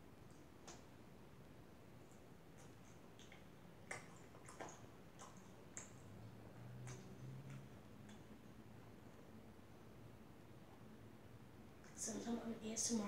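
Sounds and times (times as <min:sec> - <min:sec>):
mouth chewing food: 0:01.9 - 0:09.3.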